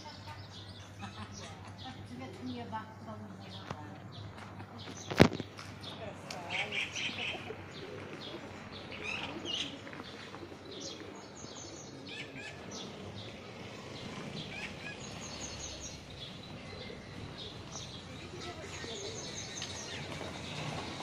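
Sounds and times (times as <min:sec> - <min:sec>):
outdoor background noise: 0:00.0 - 0:21.0
songbirds chirping: 0:00.0 - 0:21.0.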